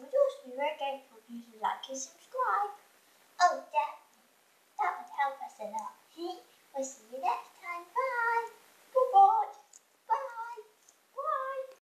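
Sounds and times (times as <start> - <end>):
child singing high-pitched phrases: 0.0 - 2.8, 3.4 - 4.2, 4.8 - 11.8.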